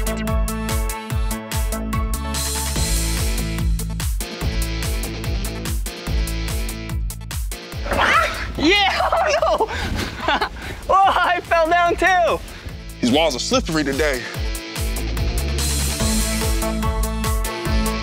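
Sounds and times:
upbeat electronic music: 0:00.0 - 0:09.7, 0:10.9 - 0:18.0.

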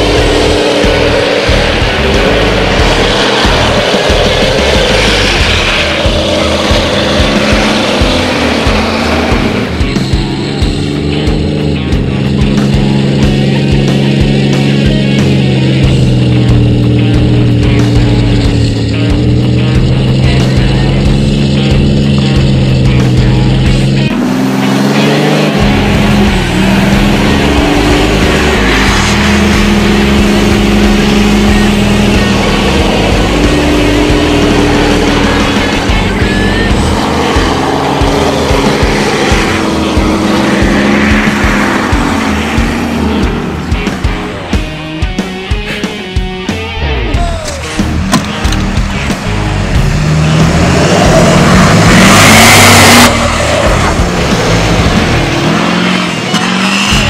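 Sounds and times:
diesel trucks engines revving: 0:00.0 - 0:57.0
music: 0:00.0 - 0:57.0.

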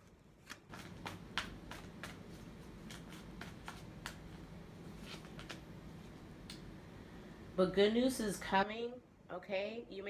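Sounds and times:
cards being shuffled: 0:00.0 - 0:05.7.

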